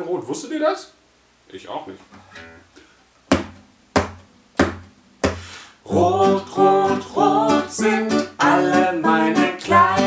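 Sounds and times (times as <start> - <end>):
percussive hits on acoustic guitar: 3.3 - 5.6.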